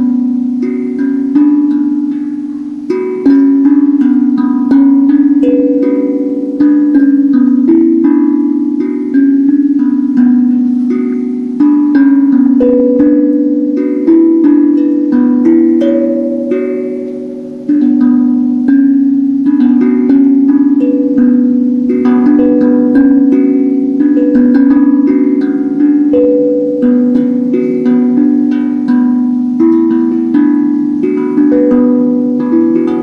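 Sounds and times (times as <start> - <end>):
handpan melody: 0.0 - 33.0.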